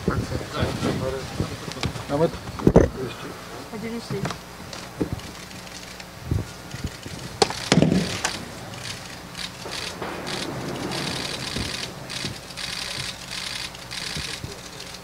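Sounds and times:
sharp knocks: 0:07.3 - 0:14.6.

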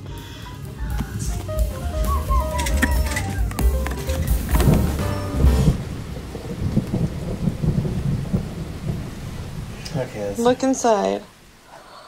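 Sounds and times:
rain hiss: 0:00.0 - 0:12.0
wind buffeting microphone: 0:02.9 - 0:10.9.

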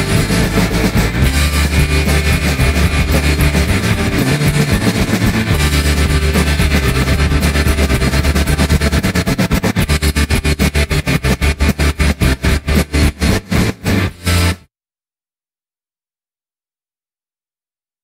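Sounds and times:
fast even pulsing: 0:00.0 - 0:14.6
psychedelic rock music: 0:00.0 - 0:14.6.

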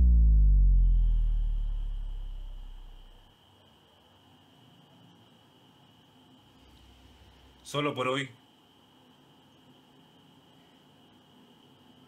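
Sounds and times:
deep cinematic boom: 0:00.0 - 0:03.2.

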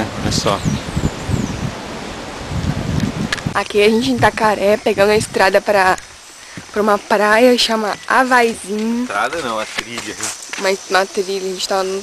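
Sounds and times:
leaves rustling: 0:00.0 - 0:12.0
wind gusts on microphone: 0:00.0 - 0:12.0.

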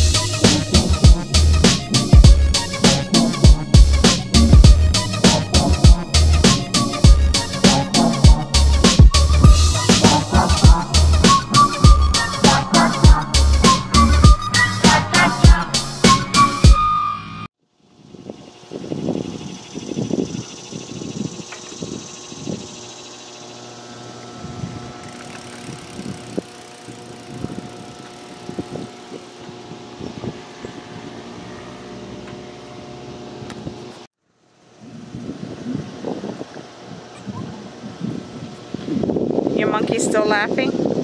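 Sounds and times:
faint engine hum: 0:17.8 - 0:39.0
wind gusting on microphone: 0:17.9 - 0:22.9, 0:24.3 - 0:34.0, 0:34.8 - 0:41.0.

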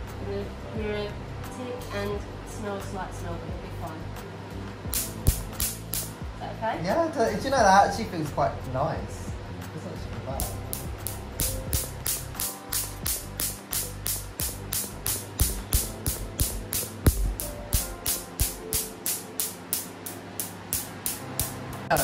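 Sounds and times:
background music: 0:00.0 - 0:22.0
laser pulses snapping: 0:04.9 - 0:06.2, 0:10.4 - 0:21.6.

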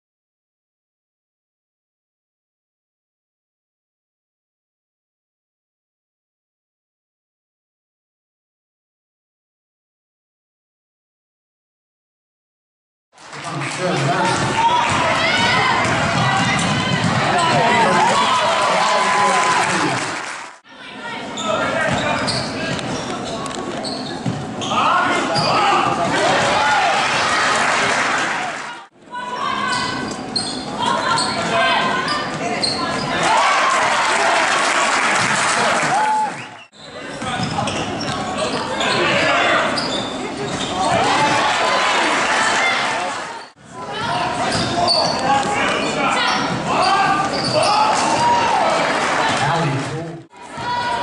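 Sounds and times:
echoing crowd and player voices: 0:13.2 - 0:51.0.

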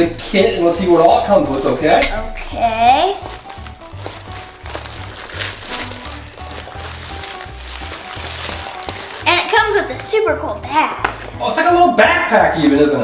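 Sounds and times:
background music with bass line: 0:00.0 - 0:13.0
plastic bag crinkling: 0:03.0 - 0:09.8.

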